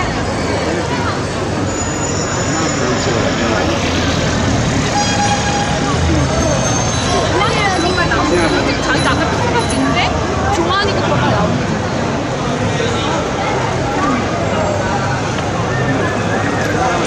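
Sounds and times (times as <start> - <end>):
people talking and calling out: 0.0 - 17.0
street and tyre noise: 0.0 - 17.0.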